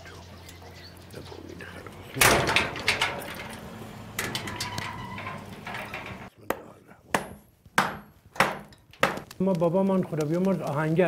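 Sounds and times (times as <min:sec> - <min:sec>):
firewood rustling and scuffling: 0:01.6 - 0:06.4, 0:07.2 - 0:11.0
sharp knocks of wood: 0:06.5 - 0:09.4.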